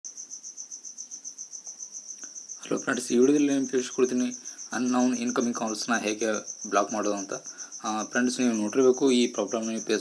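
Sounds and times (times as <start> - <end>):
insect chirping in pulses: 0.1 - 10.0.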